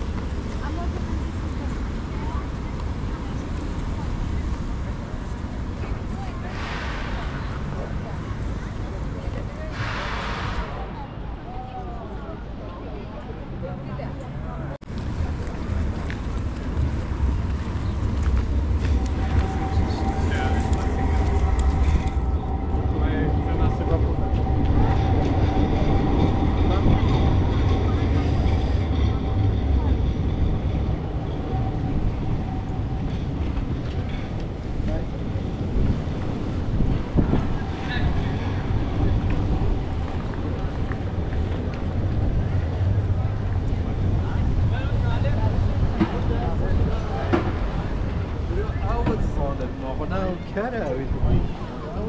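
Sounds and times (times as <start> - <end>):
low rumble of traffic: 0.0 - 52.0
passers-by talking: 0.0 - 52.0.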